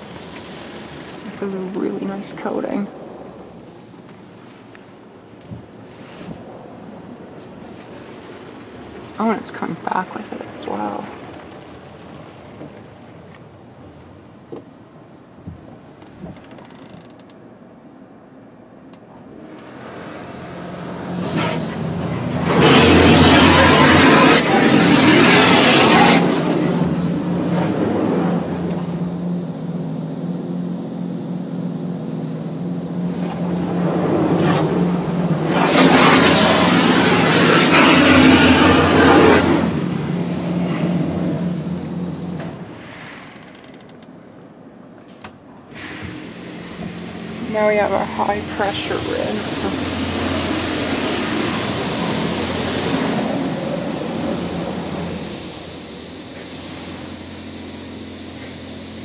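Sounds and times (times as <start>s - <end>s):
car wash machinery hum: 0.0s - 16.4s, 17.4s - 43.2s, 44.1s - 59.0s
water spray hitting car: 21.1s - 27.0s, 34.3s - 40.2s, 45.8s - 55.8s.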